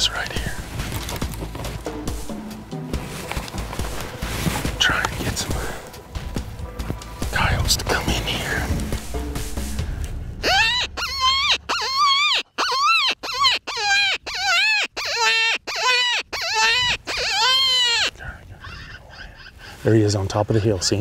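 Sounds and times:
electronic coyote calls: 10.4 - 18.8.

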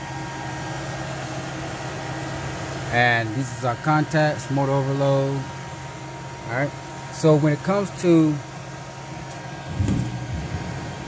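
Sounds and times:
electrical and fan hum: 0.0 - 11.0.

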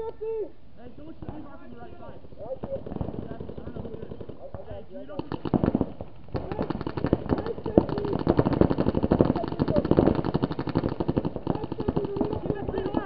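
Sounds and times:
paintball markers firing: 2.5 - 13.0
people shouting: 6.4 - 13.0.

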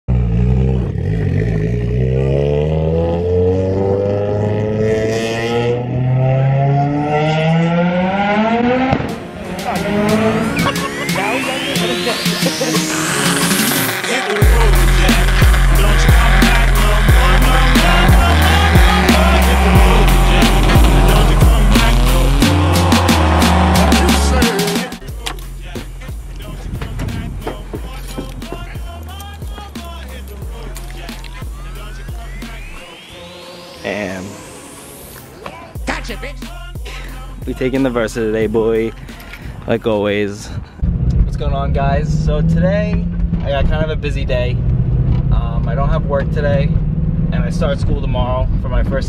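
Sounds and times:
car engine revving: 0.1 - 38.9, 40.8 - 49.0
rising electronic sweep: 1.0 - 25.2, 28.9 - 35.8
heavy bass beat: 8.4 - 33.1, 35.8 - 39.2.

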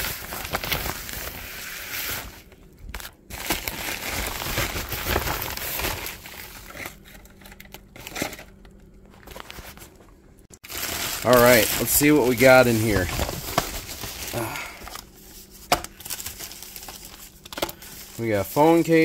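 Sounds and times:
paper packing material crinkling: 0.0 - 10.0, 10.6 - 19.0.

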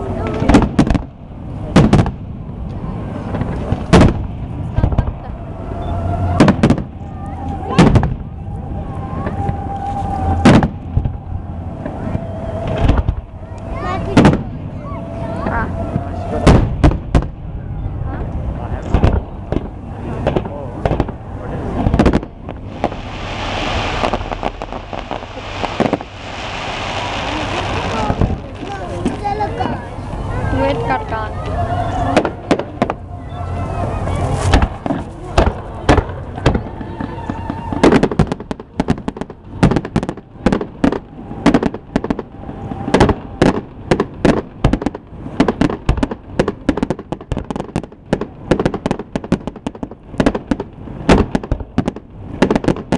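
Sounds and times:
fireworks bangs: 0.0 - 31.3, 32.0 - 52.9
low rumble: 0.0 - 52.9
firework shells bursting: 21.8 - 29.4.

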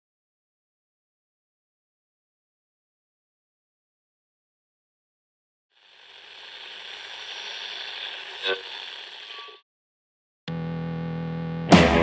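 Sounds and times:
steady crackling hiss: 5.8 - 9.6.

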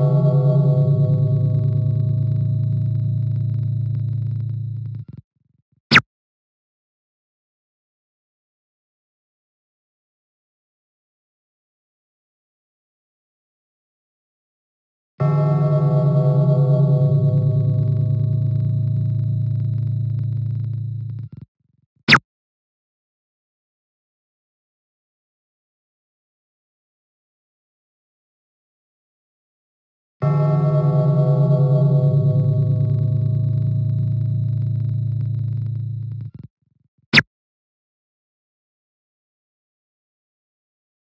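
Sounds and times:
deep ringing gong tone: 0.0 - 5.0, 15.2 - 21.3, 30.2 - 36.3.

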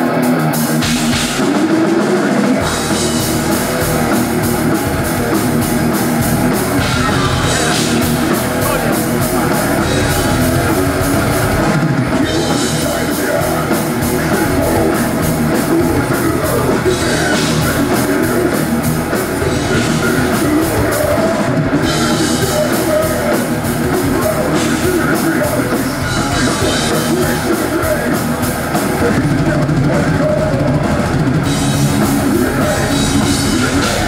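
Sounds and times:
death metal band playing: 0.0 - 34.0
distorted electric guitars: 0.0 - 34.0
pounding drum kit: 0.0 - 34.0.

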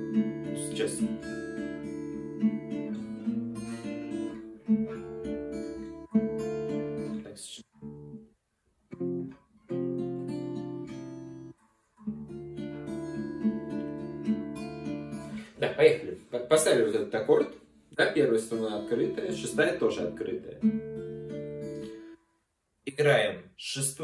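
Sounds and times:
fingerpicked acoustic guitar: 0.0 - 22.4.

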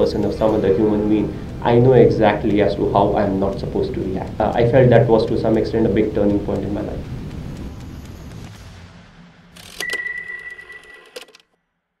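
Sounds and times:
person speaking: 0.0 - 7.2
steady high tone: 0.0 - 11.3
logo sting clicks: 9.5 - 11.5.

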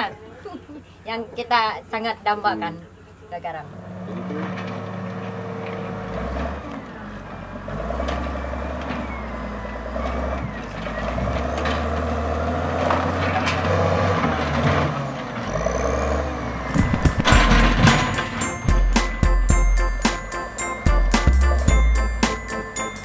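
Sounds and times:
diesel engine running: 2.5 - 23.0
machine knocks: 16.8 - 18.4.

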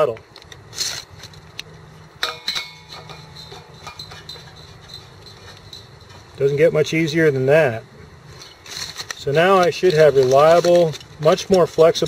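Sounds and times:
faint steady hum: 0.0 - 12.0
metal fitting clicking and clinking: 1.3 - 6.6.

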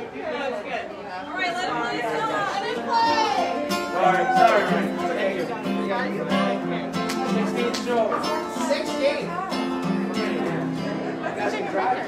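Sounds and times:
audience chatter: 0.0 - 12.0
acoustic guitar playing: 2.1 - 12.0.

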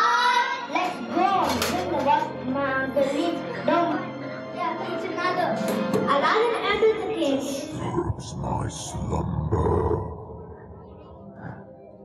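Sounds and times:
background music: 0.0 - 12.0
person speaking: 7.7 - 11.7.

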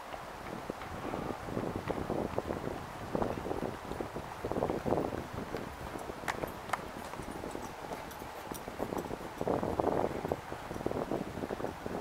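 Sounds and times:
footsteps on pavement: 0.0 - 10.4
rumbling wind: 0.0 - 12.0.

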